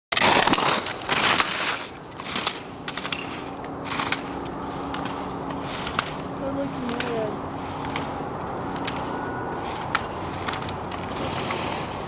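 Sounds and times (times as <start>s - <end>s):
skis scraping on snow: 0.2s - 12.0s.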